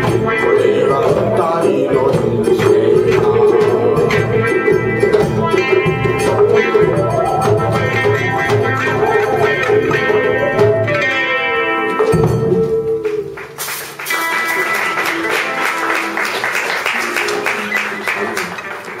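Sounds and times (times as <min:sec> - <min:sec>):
person singing folk song: 0:00.0 - 0:08.0
acoustic guitars: 0:00.0 - 0:19.0
audience applause: 0:13.0 - 0:19.0.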